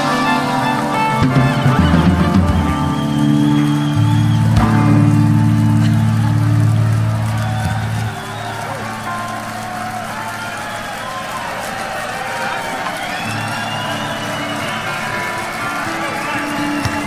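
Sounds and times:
live rock band playing: 0:00.0 - 0:10.0
audience voices: 0:00.0 - 0:17.0.

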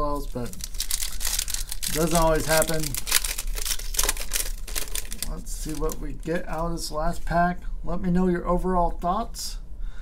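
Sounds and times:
foil wrapper crinkling: 0:00.0 - 0:06.7.

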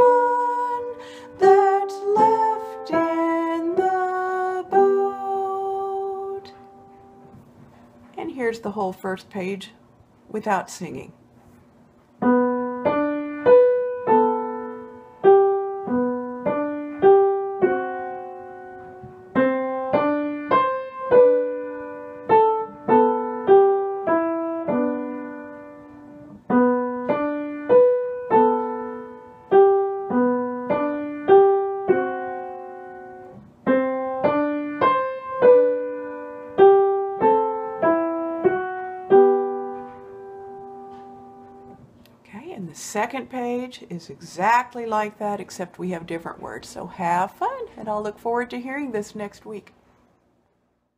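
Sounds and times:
grand piano playing single notes: 0:12.2 - 0:41.8.

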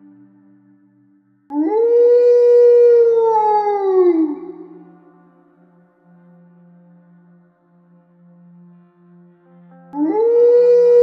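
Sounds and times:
ambient music drone: 0:00.0 - 0:11.0
dog howling: 0:01.5 - 0:04.8.

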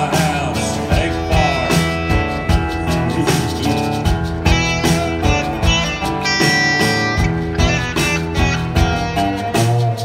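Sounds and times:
country-rock band playing: 0:00.0 - 0:10.0
lead guitar bending notes: 0:01.0 - 0:10.0.

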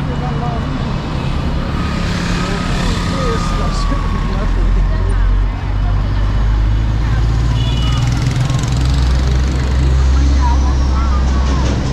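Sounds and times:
street traffic: 0:00.0 - 0:11.9.

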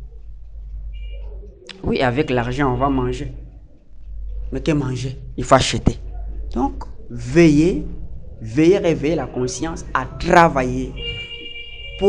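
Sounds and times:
low steady hum: 0:00.0 - 0:12.0
man's voice: 0:06.6 - 0:11.1.

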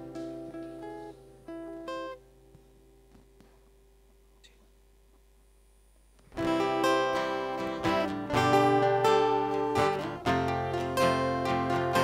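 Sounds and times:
acoustic guitar picked notes: 0:00.0 - 0:04.8, 0:06.2 - 0:12.0.

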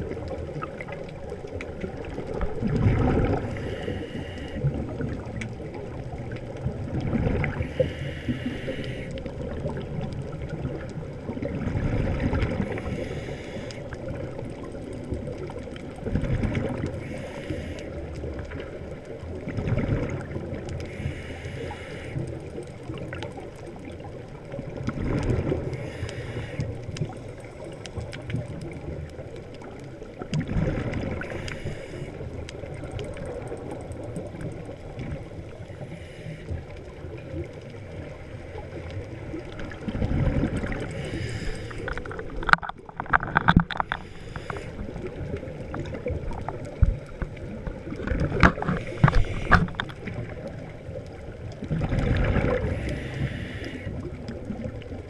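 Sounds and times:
steady underwater hiss: 0:00.0 - 0:55.0
bubbling of exhaled air: 0:01.7 - 0:22.2, 0:22.8 - 0:28.9, 0:29.7 - 0:55.0
regulator inhale hiss: 0:03.4 - 0:04.8, 0:07.6 - 0:09.3, 0:12.6 - 0:14.0, 0:17.0 - 0:18.2, 0:20.8 - 0:22.5, 0:25.7 - 0:26.9, 0:31.2 - 0:32.3, 0:35.6 - 0:37.0, 0:40.8 - 0:42.1, 0:43.9 - 0:45.1, 0:48.8 - 0:49.8, 0:52.5 - 0:54.2
faint clicks: 0:12.4 - 0:19.4, 0:20.3 - 0:55.0
underwater regulator bubbling: 0:38.8 - 0:55.0.

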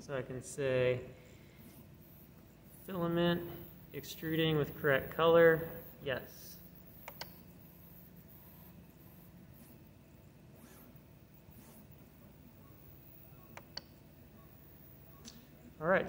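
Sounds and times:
faint steady hum: 0:00.0 - 0:16.0
control knob clicks: 0:07.0 - 0:07.4.

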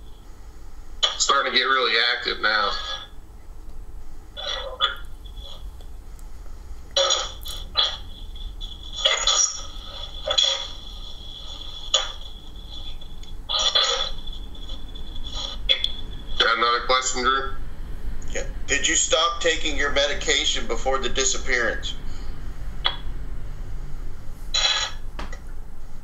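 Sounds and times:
radio static bursts: 0:01.0 - 0:03.2, 0:04.3 - 0:05.8, 0:07.0 - 0:17.6, 0:18.3 - 0:22.0, 0:24.5 - 0:25.1
clipped voice fragments: 0:08.8 - 0:10.8.

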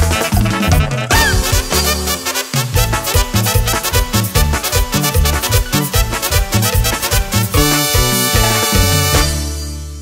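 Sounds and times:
band playing dance song: 0:00.0 - 0:10.0.

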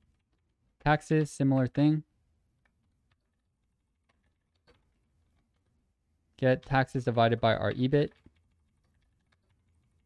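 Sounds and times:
faint keyboard keystrokes: 0:02.6 - 0:10.0.

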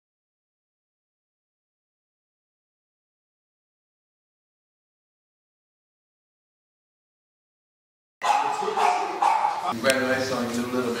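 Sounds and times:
dog barking: 0:08.2 - 0:09.8
man speaking: 0:08.2 - 0:11.0.

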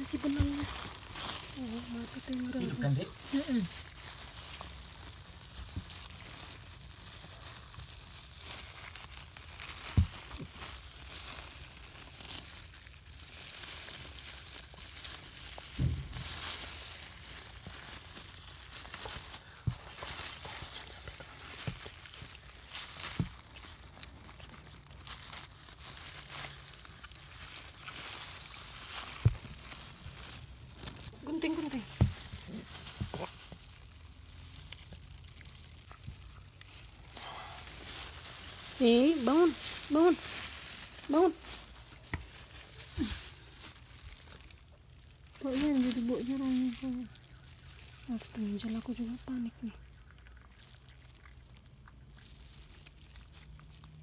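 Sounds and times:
plastic gloves crinkling: 0:00.0 - 0:54.0.

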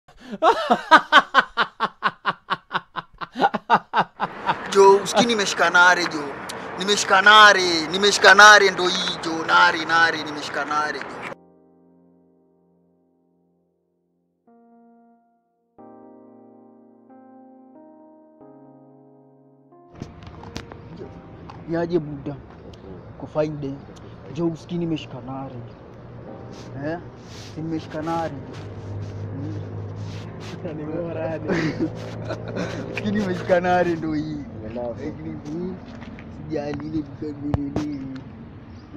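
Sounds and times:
person laughing: 0:00.2 - 0:05.3, 0:31.4 - 0:34.0
man speaking: 0:04.6 - 0:11.1, 0:33.0 - 0:35.8.

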